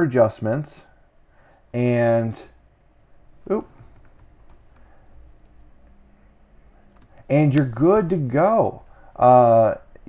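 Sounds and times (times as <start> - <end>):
faint keyboard clicks: 6.7 - 7.7.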